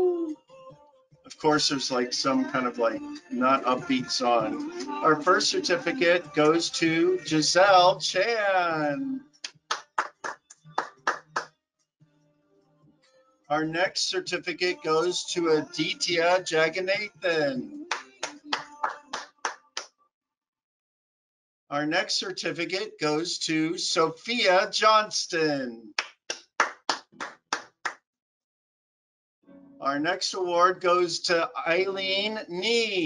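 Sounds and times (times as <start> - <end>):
faint background music: 0.0 - 10.2, 12.3 - 19.6, 29.5 - 33.0
hand claps: 9.4 - 11.5, 17.9 - 19.9, 26.0 - 28.0.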